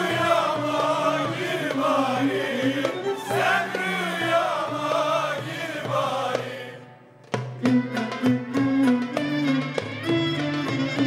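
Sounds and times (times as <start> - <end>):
mixed choir singing: 0.0 - 7.0
violins and oud ensemble: 0.0 - 11.0.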